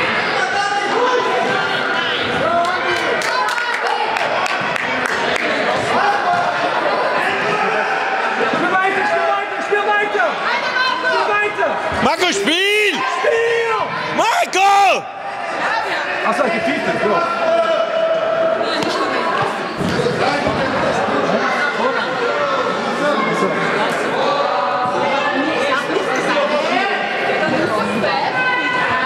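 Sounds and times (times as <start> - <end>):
voices echoing in sports hall: 0.0 - 29.0
loud shouts: 5.9 - 18.7.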